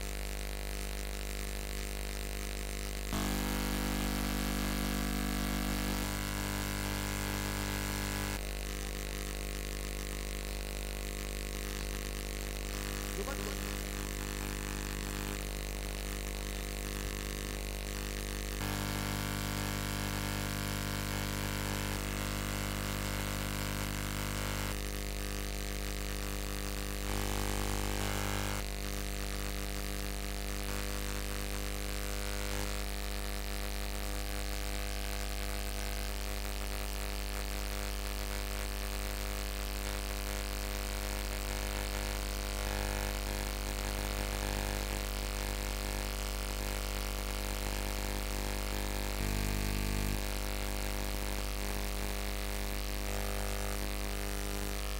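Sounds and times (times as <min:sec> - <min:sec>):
loud machine hum: 0:03.2 - 0:08.5, 0:18.6 - 0:24.8, 0:48.9 - 0:50.5.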